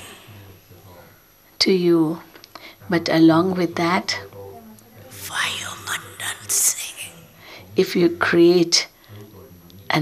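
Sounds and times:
person whispering: 0:00.0 - 0:00.6, 0:05.1 - 0:07.8.

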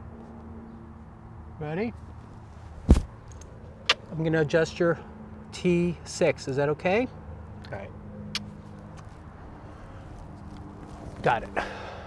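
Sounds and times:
sharp thump: 0:02.8 - 0:03.2.

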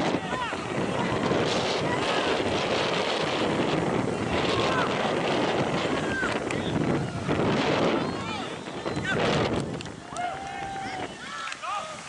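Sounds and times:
wind on microphone: 0:00.0 - 0:12.0
players shouting: 0:04.2 - 0:09.3.

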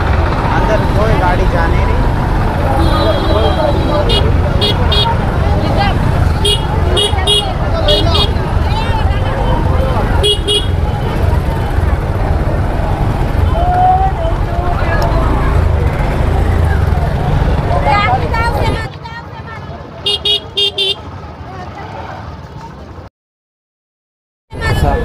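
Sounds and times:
motorcycle engine rumble: 0:00.0 - 0:23.1
people's voices: 0:00.0 - 0:23.1, 0:24.5 - 0:25.0
vehicle horn toots: 0:02.7 - 0:05.2, 0:06.4 - 0:08.4, 0:10.2 - 0:10.8, 0:20.1 - 0:21.0.

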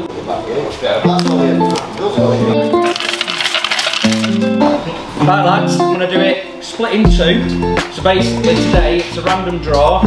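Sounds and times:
acoustic guitar music: 0:01.0 - 0:03.0, 0:04.0 - 0:10.0
tokens rattling in wooden box: 0:02.7 - 0:04.6.

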